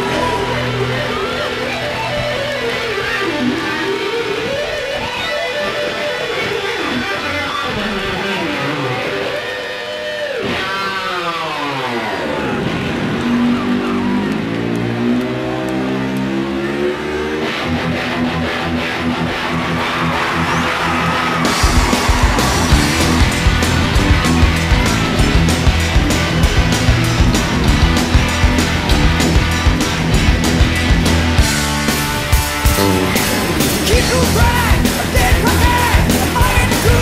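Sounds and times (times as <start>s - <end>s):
drums: 0.0s - 37.0s
electric guitar solo: 0.0s - 37.0s.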